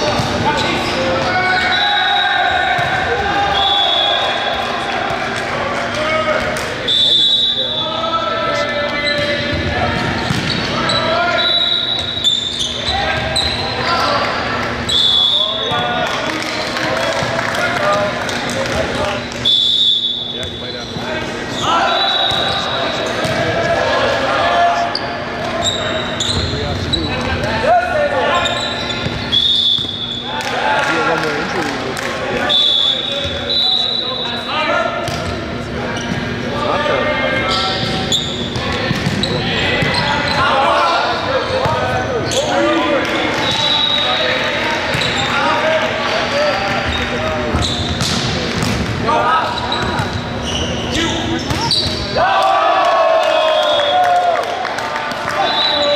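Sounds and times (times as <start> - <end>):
echoing players' voices: 29.4 - 55.9
volleyball struck and bouncing: 38.6 - 39.9, 47.5 - 49.0.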